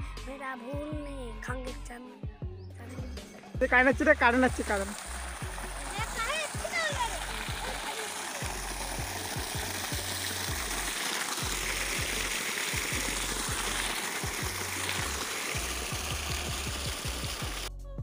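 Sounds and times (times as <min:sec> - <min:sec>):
background music: 0:00.0 - 0:18.0
water gushing and splashing: 0:03.9 - 0:17.7.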